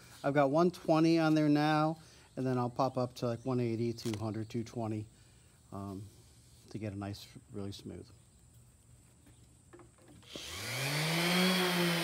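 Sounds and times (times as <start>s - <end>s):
orbital sander whining: 10.2s - 12.0s.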